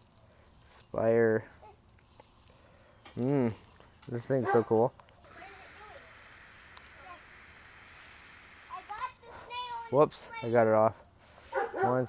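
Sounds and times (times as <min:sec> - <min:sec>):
airy hiss of vape drag: 0:05.3 - 0:09.5.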